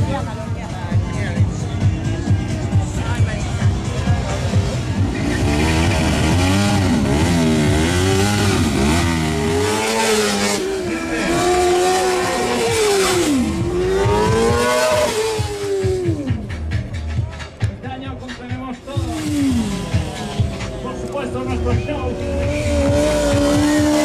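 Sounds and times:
music with low beat: 0.0 - 24.0
vehicle engine revving: 3.2 - 17.0, 18.8 - 24.0.

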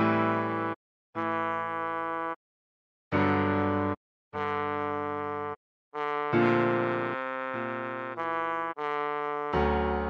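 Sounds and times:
trombone notes: 0.0 - 2.4, 3.2 - 10.0.

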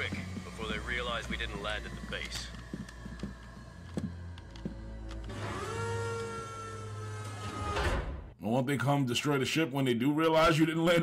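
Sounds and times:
sustained rising tone: 0.0 - 7.6.

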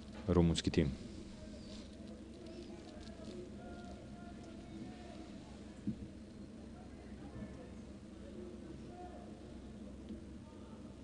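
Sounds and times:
low steady hum: 0.0 - 11.0
faint distant calls: 1.0 - 11.0.

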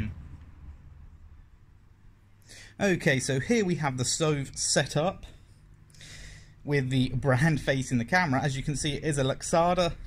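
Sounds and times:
faint low rumble: 0.0 - 2.4
man's voice: 6.7 - 10.0.

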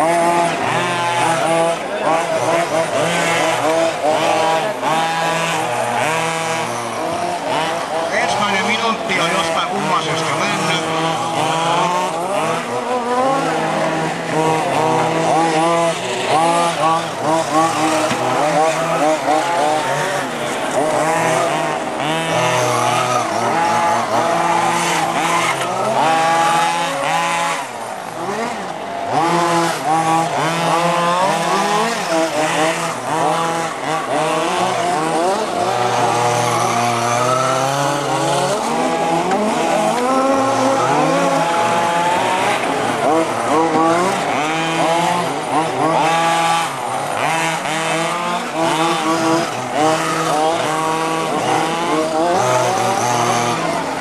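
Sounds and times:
model car engines revving: 0.0 - 54.0.

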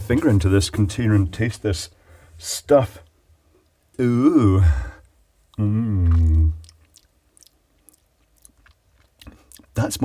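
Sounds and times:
wet mouth clicks and lip smacks: 5.5 - 9.8.

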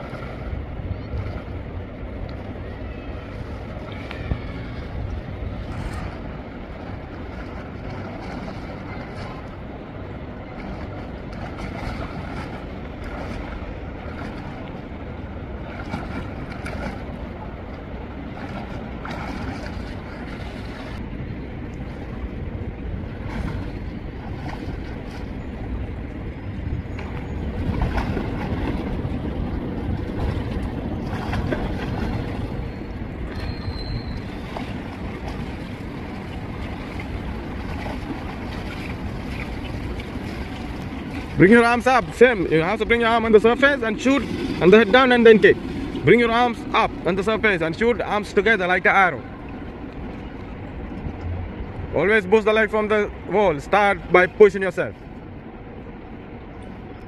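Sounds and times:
low microphone rumble: 0.0 - 57.0
steady rushing noise: 0.0 - 57.0
swimmer splashing water: 0.0 - 57.0.

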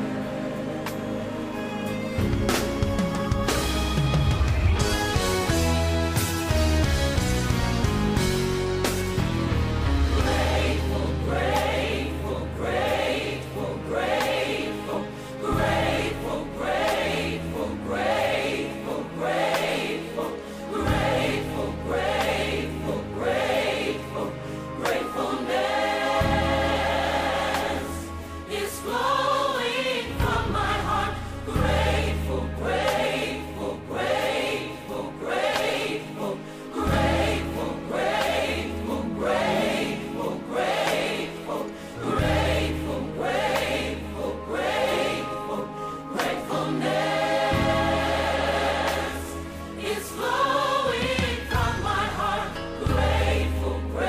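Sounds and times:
choir singing: 0.0 - 2.4, 9.5 - 54.0.

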